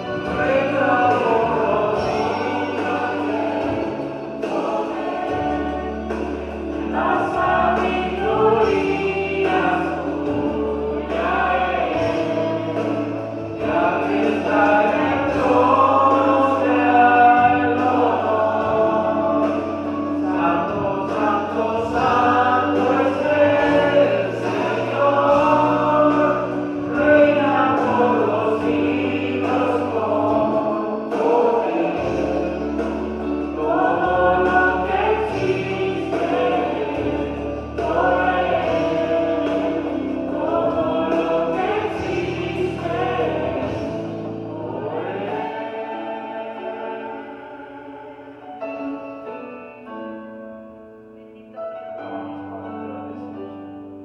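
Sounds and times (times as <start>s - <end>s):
sustained bass accompaniment: 0.0s - 49.0s
man singing gospel into microphone: 0.0s - 49.1s.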